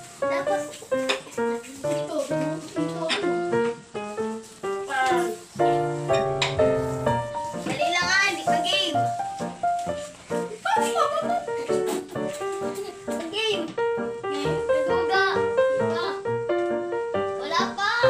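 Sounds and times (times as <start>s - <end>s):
background music with held notes: 0.0s - 18.0s
children's voices: 7.7s - 9.0s, 17.4s - 18.0s.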